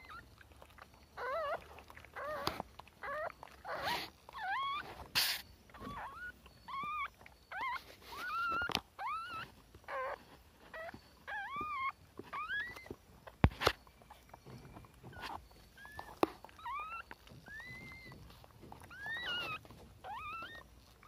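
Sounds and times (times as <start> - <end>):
puppies squeaking and whimpering: 0.0 - 21.0.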